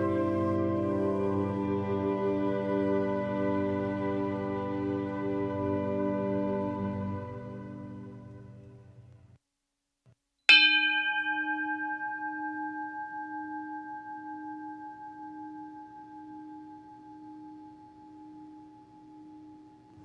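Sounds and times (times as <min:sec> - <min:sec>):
singing bowl ringing: 0:10.5 - 0:20.0.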